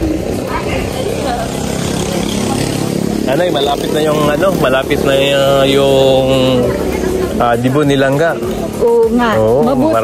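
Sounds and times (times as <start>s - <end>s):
vehicle engine running: 0.0s - 10.0s
voices: 0.0s - 10.0s.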